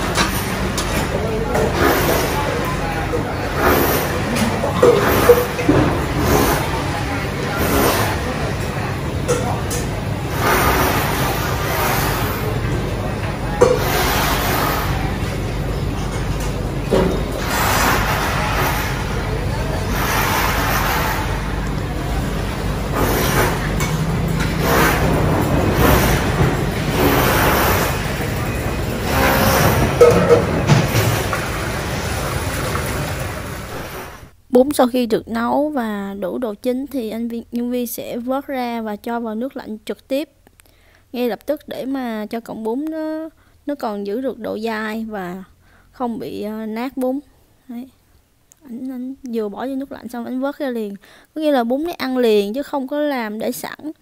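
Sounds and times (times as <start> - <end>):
utensils clinking against bowls: 0.0 - 34.0
background voices talking: 0.0 - 36.1.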